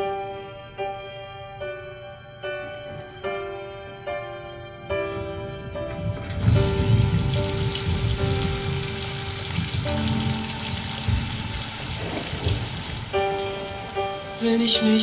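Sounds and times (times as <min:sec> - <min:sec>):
heavy rain pouring: 0:05.9 - 0:15.0.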